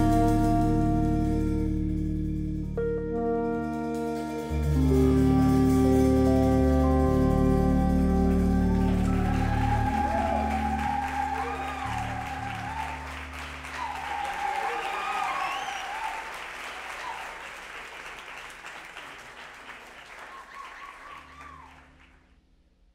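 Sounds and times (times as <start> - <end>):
band playing low notes: 0.0 - 16.2
audience applause: 7.2 - 22.2
audience whistling: 7.4 - 22.1.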